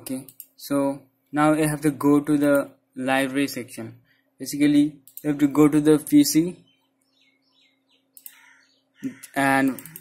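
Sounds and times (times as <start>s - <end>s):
faint bird chirping: 3.4s - 10.0s.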